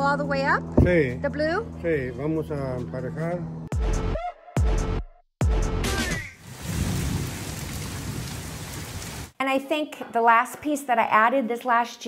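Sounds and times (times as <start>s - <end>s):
steady rain on trees and patio: 6.4s - 9.4s
low rumble of thunder: 6.6s - 9.3s.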